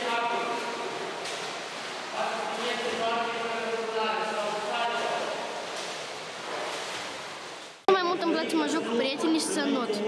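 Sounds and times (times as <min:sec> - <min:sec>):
water splashing in pool: 0:00.0 - 0:07.9.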